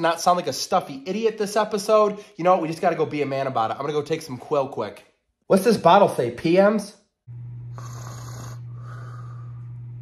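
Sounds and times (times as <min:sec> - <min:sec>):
steady low hum: 0:07.3 - 0:10.0
man snoring: 0:07.7 - 0:09.7.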